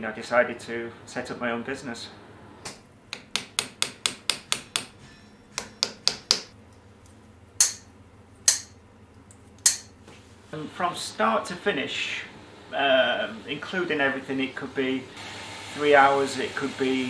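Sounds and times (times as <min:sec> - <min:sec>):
hammer tapping on metal: 0:03.1 - 0:06.6, 0:07.6 - 0:08.8, 0:09.6 - 0:10.0
ringing hammer blows: 0:04.4 - 0:06.3.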